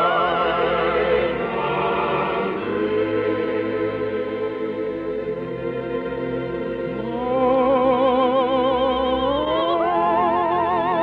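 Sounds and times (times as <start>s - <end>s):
choir and orchestra performing: 0.0s - 11.0s.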